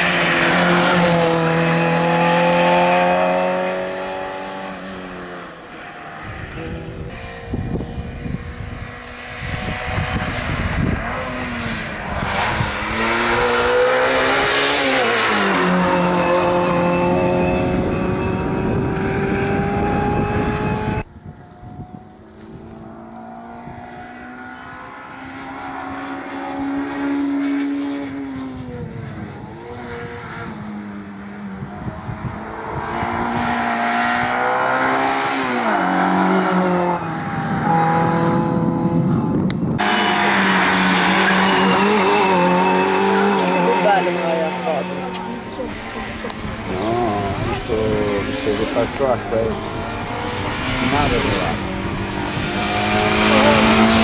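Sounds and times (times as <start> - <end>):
car engine revving through gears: 0.0 - 54.0.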